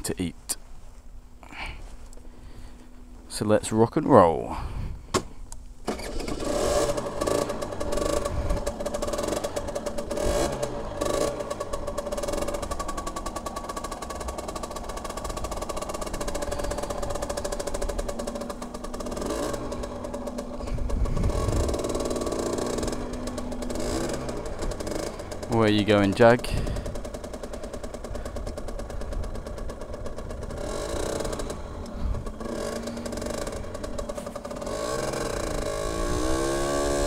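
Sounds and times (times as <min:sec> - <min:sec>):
motorcycle engine revving: 0:05.8 - 0:37.0.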